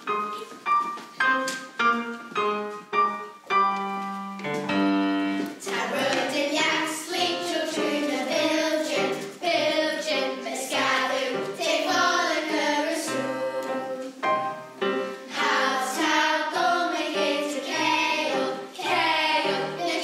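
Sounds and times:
piano playing: 0.0 - 20.0
children's choir singing: 5.2 - 20.0.

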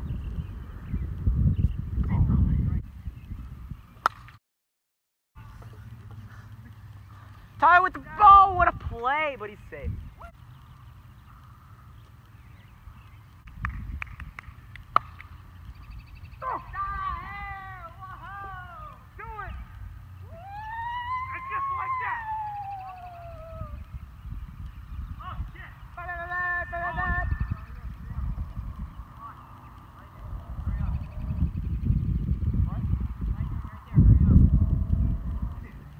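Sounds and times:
wind rumbling on microphone: 0.0 - 4.3, 5.4 - 35.9
sharp crack: 4.0 - 4.4, 13.3 - 15.5
faint clicks: 10.5 - 16.1
high-pitched yells: 20.3 - 23.8.

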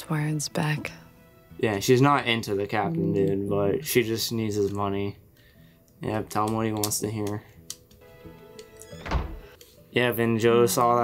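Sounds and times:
soft background music: 0.0 - 11.0
door closing with a thud: 8.9 - 9.5.

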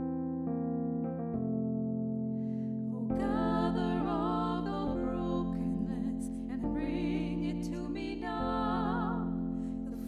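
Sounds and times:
keyboard sustained chords: 0.0 - 10.0.

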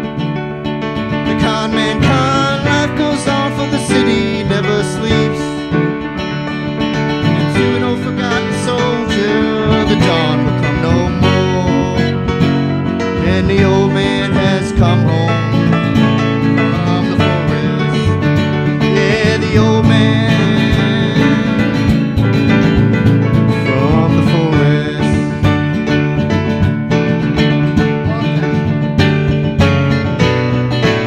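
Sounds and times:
acoustic guitar strumming: 0.0 - 31.0
keyboard playing: 0.0 - 31.0.

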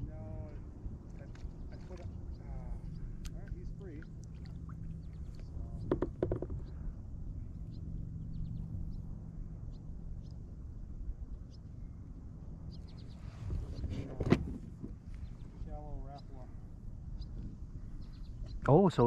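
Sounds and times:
low steady rumble: 0.0 - 19.0.

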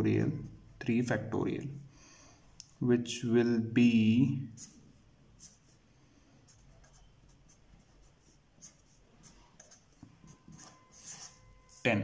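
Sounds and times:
pen scratching on paper: 6.5 - 11.9.

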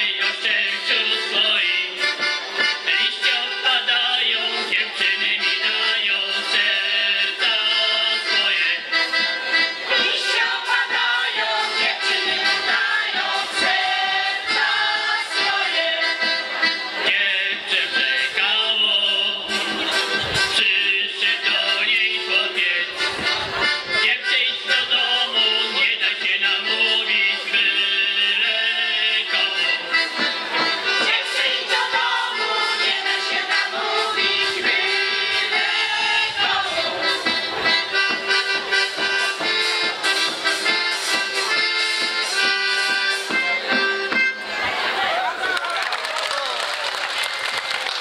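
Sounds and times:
accordion: 0.0 - 45.5
women's choir singing: 9.9 - 16.1, 31.0 - 37.3.

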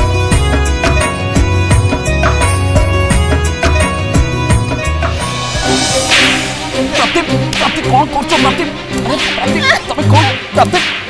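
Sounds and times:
low held notes: 3.6 - 10.5
sliding note melody: 4.5 - 9.8
swishing whooshes: 4.6 - 9.6.

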